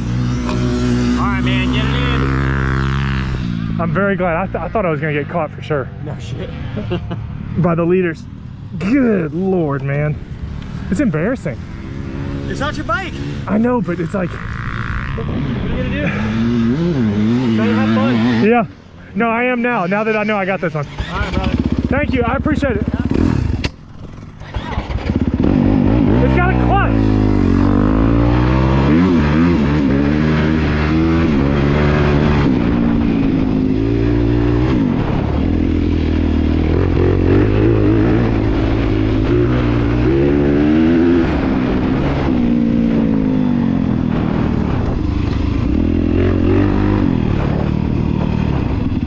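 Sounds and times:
dirt bike engine revving: 0:00.0 - 0:05.4, 0:06.5 - 0:49.0.

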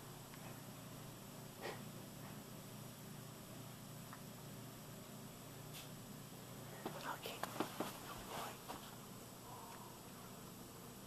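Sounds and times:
person whispering: 0:06.8 - 0:07.5, 0:08.3 - 0:08.7.

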